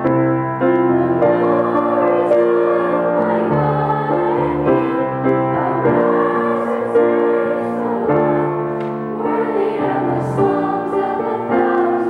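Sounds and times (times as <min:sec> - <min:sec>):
children's choir singing a hymn: 0:00.0 - 0:12.0.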